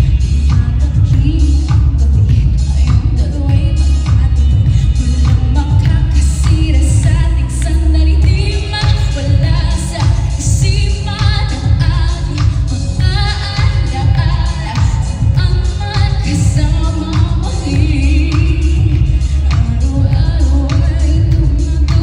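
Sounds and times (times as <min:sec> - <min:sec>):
amplified backing music with bass: 0:00.0 - 0:22.0
woman singing pop song: 0:00.0 - 0:22.0.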